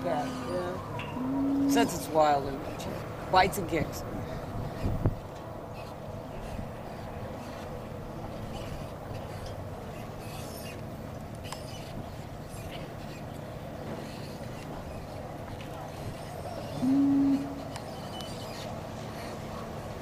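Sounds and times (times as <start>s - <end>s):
faint hum: 4.0s - 20.0s.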